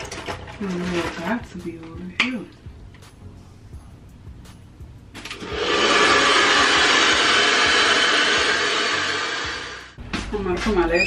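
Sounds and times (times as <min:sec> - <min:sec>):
hair dryer running: 0:05.3 - 0:10.0.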